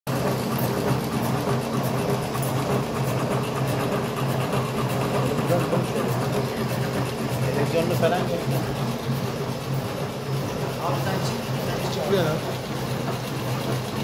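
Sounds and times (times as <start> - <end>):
machine motor humming: 0.1 - 14.0
regular mechanical beat: 0.1 - 14.0.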